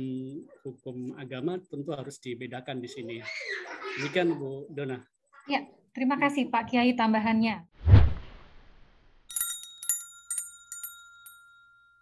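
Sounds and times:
high chime note ringing: 9.3 - 12.0.

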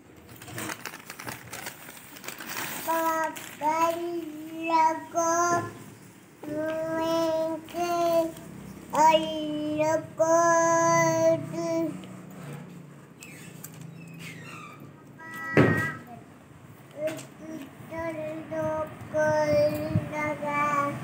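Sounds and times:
child singing long notes: 2.9 - 5.8, 6.4 - 12.0, 15.2 - 16.2, 17.0 - 21.0.

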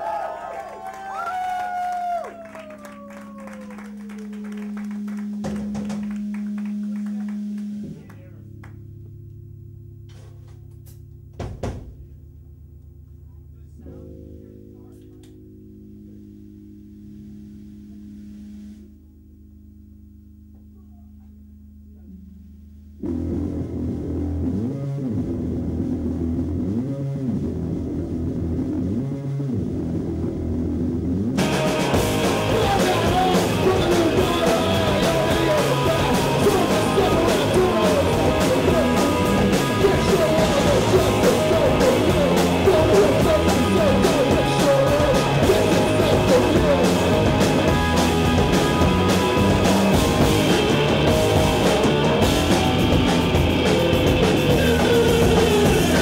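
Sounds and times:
audience clapping: 0.0 - 8.8
amp drone: 0.9 - 56.0
rock band playing a riff: 2.4 - 11.8, 29.9 - 56.0
low thump: 11.3 - 12.2.

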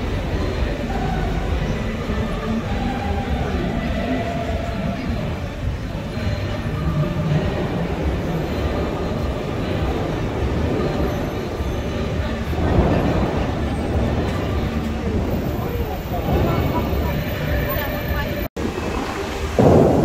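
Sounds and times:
traffic rumble: 0.0 - 20.0
voices of passers-by: 0.0 - 20.0.

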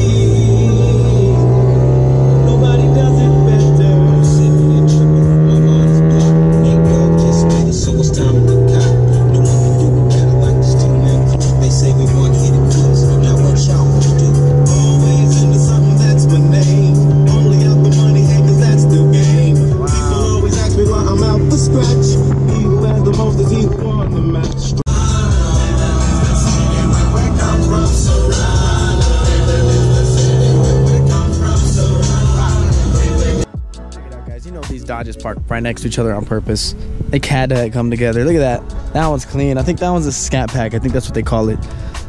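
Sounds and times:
car engine revving and shifting: 0.0 - 33.5
background music with steady beat: 0.0 - 42.0.

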